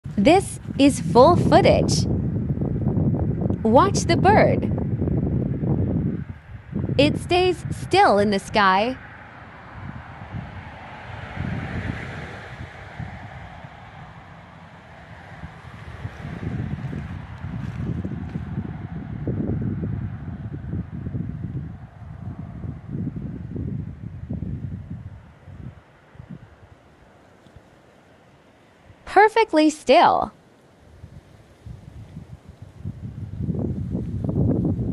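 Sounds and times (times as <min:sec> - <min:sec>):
wind buffeting microphone: 0:00.0 - 0:27.7, 0:30.9 - 0:34.9
steady wind hiss: 0:00.0 - 0:29.1, 0:30.3 - 0:34.9.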